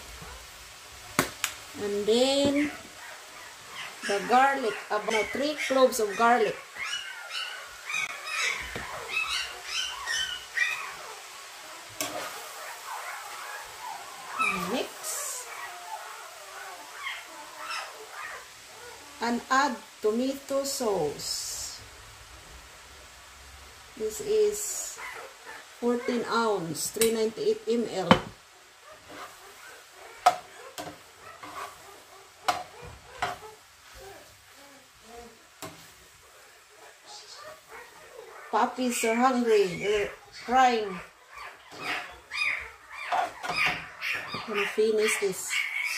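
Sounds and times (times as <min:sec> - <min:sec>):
puppies whining and whimpering: 0:02.6 - 0:19.2, 0:37.1 - 0:45.9
spatula scraping meat in pan: 0:29.0 - 0:29.6, 0:30.2 - 0:34.0.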